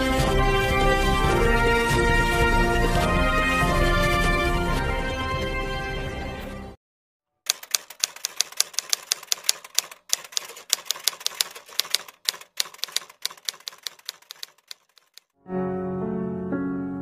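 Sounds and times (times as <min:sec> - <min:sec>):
typewriter key clicks: 0:07.5 - 0:15.2.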